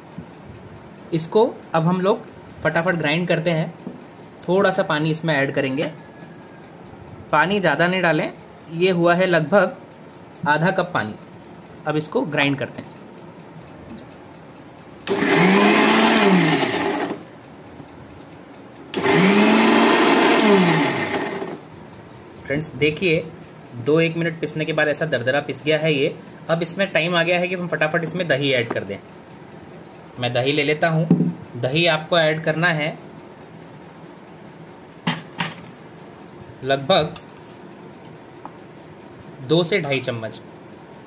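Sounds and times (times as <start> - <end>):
mixer grinder motor whine: 15.0 - 17.3, 18.9 - 21.7.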